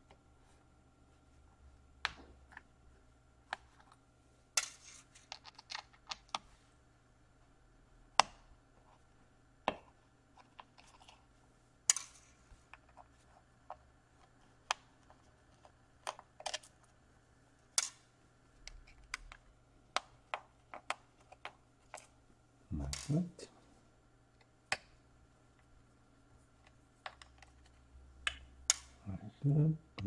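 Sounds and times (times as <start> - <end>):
person murmuring: 29.1 - 29.9.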